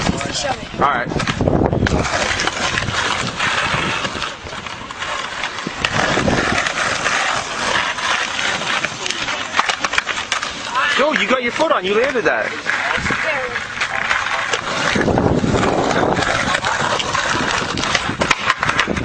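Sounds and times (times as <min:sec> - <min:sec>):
skateboard clicks and clacks: 0:00.0 - 0:19.0
skateboard wheels rolling on asphalt: 0:00.0 - 0:19.0.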